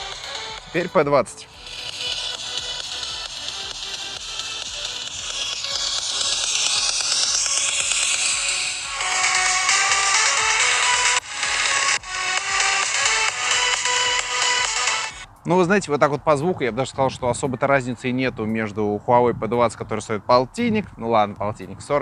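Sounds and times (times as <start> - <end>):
pop song through phone speaker: 0.0 - 15.2.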